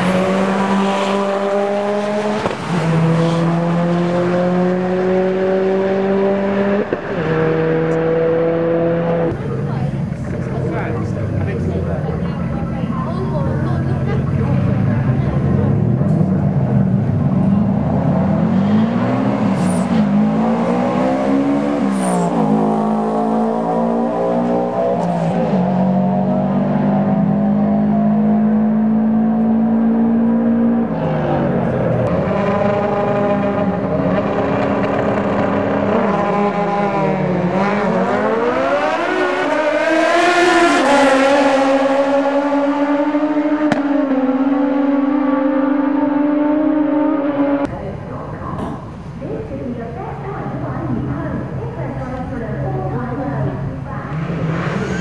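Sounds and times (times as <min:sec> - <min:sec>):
drag racing engines revving: 0:00.0 - 0:49.1, 0:50.0 - 0:55.0.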